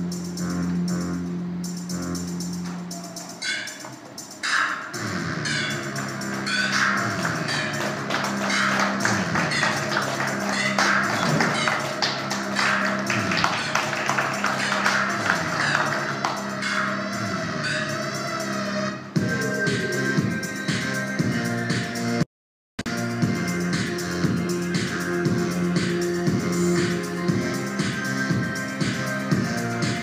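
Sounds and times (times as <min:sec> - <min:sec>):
flamenco-like music over loudspeaker: 0:06.5 - 0:16.8.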